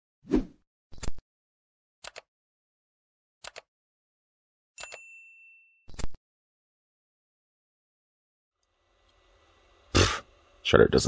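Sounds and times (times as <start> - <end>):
notification bell ding: 4.8 - 6.0.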